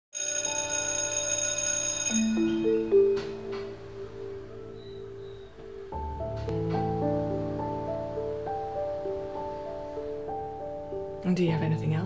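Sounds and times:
electronic bell-like chord: 0.2 - 5.6.

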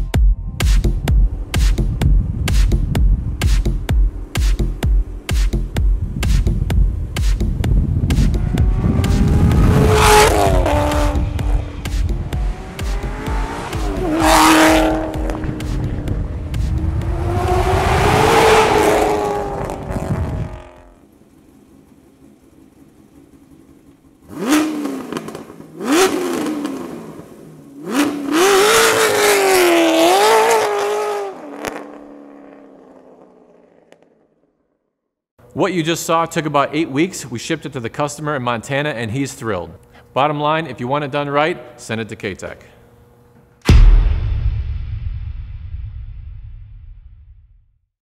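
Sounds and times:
electronic music with heavy beat: 0.0 - 9.8, 10.5 - 17.6
car engine revving: 1.3 - 34.2.

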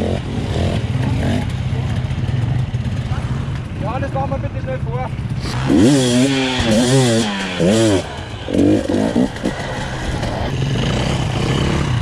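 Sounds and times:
motorcycle engine revving: 0.0 - 4.2, 5.0 - 12.0.

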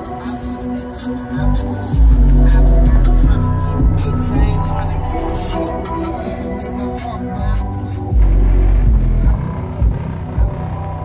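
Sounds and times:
hip-hop track with organ tones: 0.0 - 11.0.

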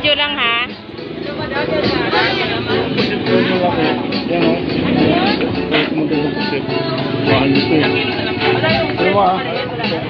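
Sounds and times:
background music: 0.0 - 10.0
market and street noise: 0.0 - 10.0
people talking: 0.0 - 10.0.

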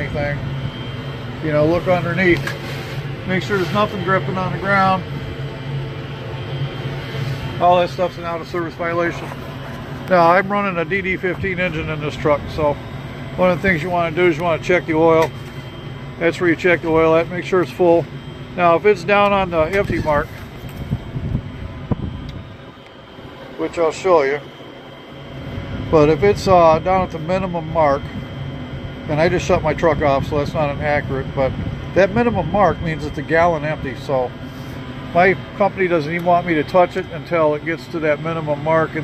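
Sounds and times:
low mechanical hum: 0.0 - 39.0
noisy wash: 0.0 - 39.0
wind rumble on microphone: 19.2 - 22.8, 25.4 - 34.0.

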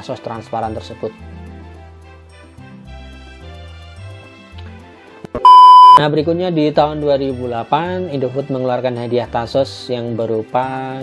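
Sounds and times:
quiet background music: 0.0 - 2.0, 6.0 - 11.0
electronic beep: 5.4 - 6.0.

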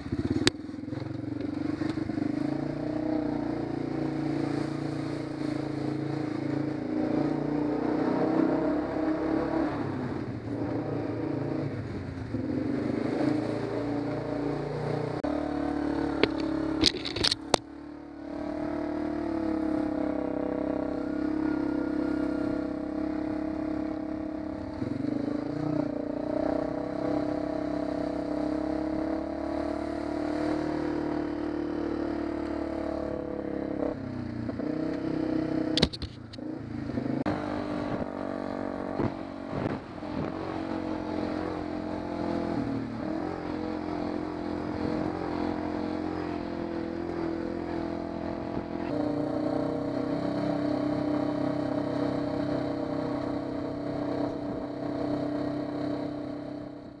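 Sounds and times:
small vehicle engine running: 0.0 - 57.0.

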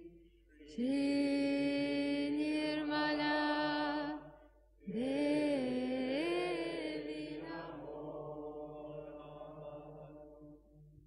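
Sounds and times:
mantra chanting: 4.9 - 10.7.

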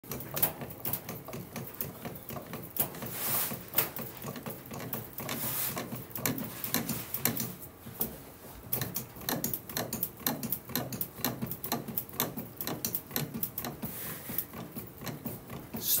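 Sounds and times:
bat rolling machine clicking: 0.0 - 7.6.

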